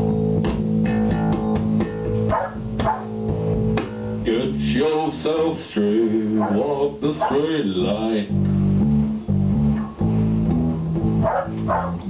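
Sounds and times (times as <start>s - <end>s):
electric bass guitar riff: 0.0s - 12.0s.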